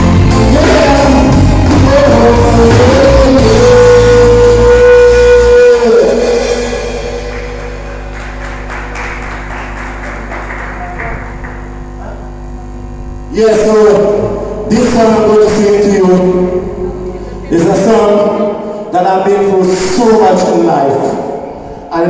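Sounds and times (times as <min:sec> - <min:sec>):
reggae band playing: 0:00.0 - 0:11.5.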